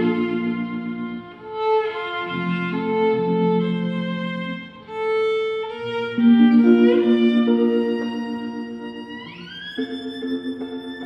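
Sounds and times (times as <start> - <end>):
sustained violin note: 0.0 - 11.0.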